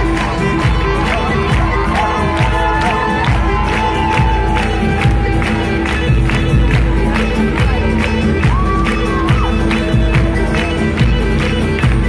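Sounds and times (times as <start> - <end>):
crowd cheering: 0.0 - 12.0
live band music: 0.0 - 12.0.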